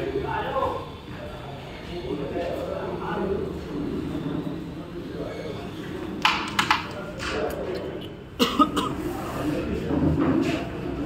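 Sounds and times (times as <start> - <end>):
low murmuring voices: 0.0 - 11.0
person coughing: 8.4 - 9.0.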